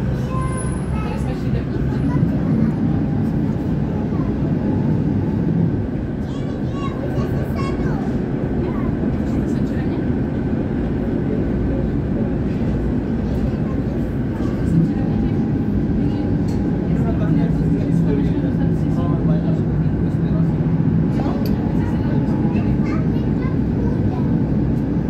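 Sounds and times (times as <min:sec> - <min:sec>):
tram rumbling on rails: 0:00.0 - 0:25.0.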